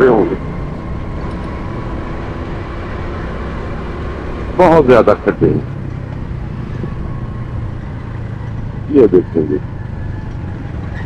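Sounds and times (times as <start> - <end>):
motorcycle engine running: 0.0 - 11.0
road noise: 0.0 - 11.0.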